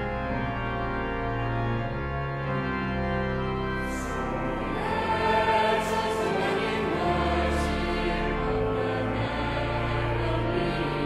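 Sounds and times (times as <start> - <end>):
pipe organ chords: 0.0 - 11.0
choir singing a carol: 0.1 - 11.0.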